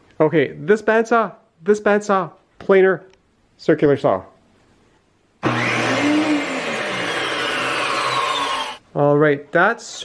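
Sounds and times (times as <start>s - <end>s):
woodworking machine motors whirring: 5.4s - 8.8s.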